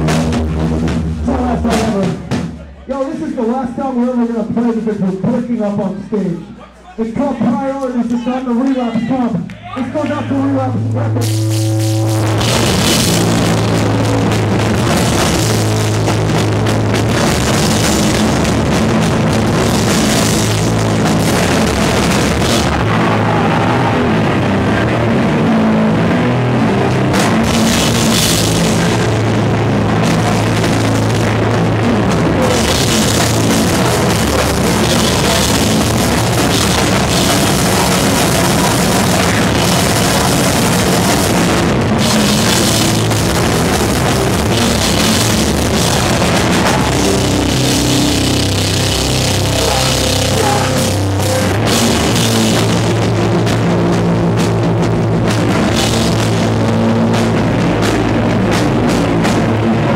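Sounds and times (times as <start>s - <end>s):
drum kit with cymbals: 0.0s - 3.2s, 10.6s - 23.7s, 26.7s - 59.9s
electric guitar: 10.0s - 59.9s.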